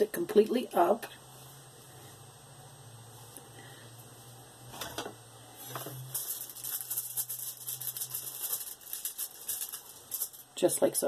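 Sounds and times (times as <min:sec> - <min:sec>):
plastic sheet crinkling: 0:05.6 - 0:10.4
fast crackling: 0:06.1 - 0:10.4.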